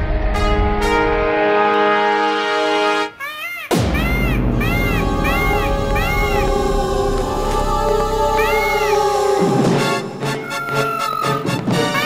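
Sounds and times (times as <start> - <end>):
background music with held notes: 0.0 - 12.0
cartoon peacock calls: 3.2 - 6.9.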